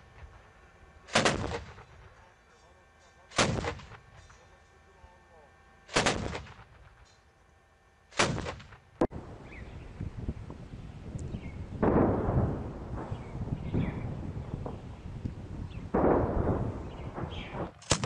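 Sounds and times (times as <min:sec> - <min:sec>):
heavy gunshots echoing: 0:01.1 - 0:02.1, 0:03.3 - 0:04.0, 0:05.9 - 0:06.9, 0:08.2 - 0:09.3, 0:11.8 - 0:14.8, 0:15.8 - 0:18.0
distant gunfire and explosions: 0:01.1 - 0:02.3, 0:03.3 - 0:04.2, 0:05.9 - 0:07.0, 0:08.1 - 0:09.5, 0:11.7 - 0:15.0, 0:15.6 - 0:18.0.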